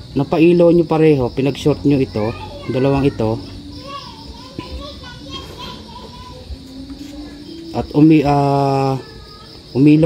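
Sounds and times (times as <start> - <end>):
children calling and playing: 0.0 - 10.0.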